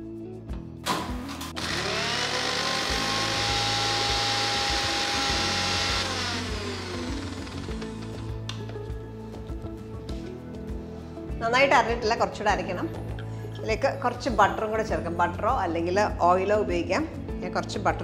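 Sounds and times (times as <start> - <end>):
background music: 0.0 - 18.0
mixer grinder motor whining: 1.5 - 8.5.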